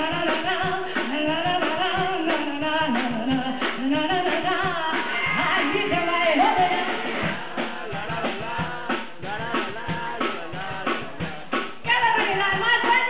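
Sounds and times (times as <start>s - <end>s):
live band playing: 0.0s - 13.0s
woman singing: 0.0s - 13.0s.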